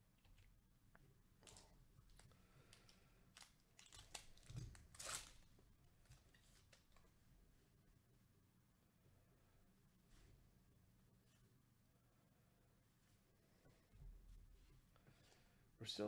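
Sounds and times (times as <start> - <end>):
card pack wrapper crinkling: 1.4 - 5.5.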